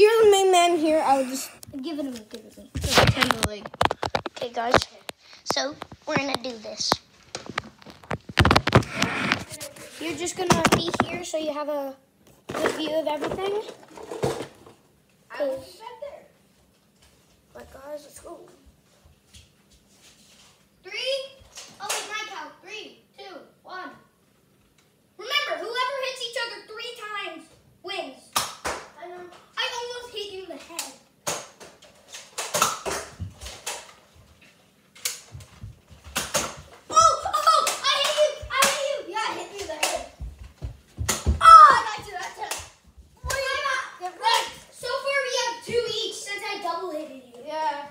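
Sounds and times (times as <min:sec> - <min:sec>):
children shouting and squealing: 0:36.9 - 0:39.8, 0:41.3 - 0:42.6, 0:43.2 - 0:46.4
child calling out: 0:41.4 - 0:42.1.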